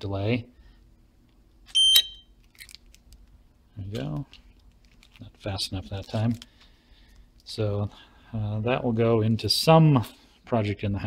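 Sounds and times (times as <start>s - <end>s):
high-pitched buzzer beep: 1.8s - 2.3s.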